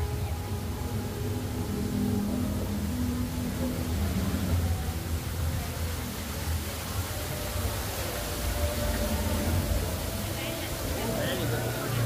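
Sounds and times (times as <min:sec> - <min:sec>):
continuous low rumble: 0:00.0 - 0:12.0
waterfall hissing: 0:00.0 - 0:12.0.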